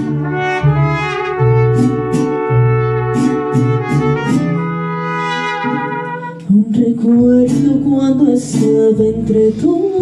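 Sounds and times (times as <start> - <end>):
trumpets playing held notes: 0.0 - 6.5
mariachi band: 0.0 - 10.0.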